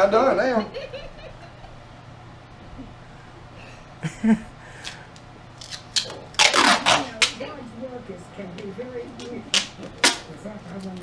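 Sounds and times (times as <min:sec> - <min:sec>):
duct tape tearing off roll: 0:05.6 - 0:07.4, 0:09.2 - 0:11.0.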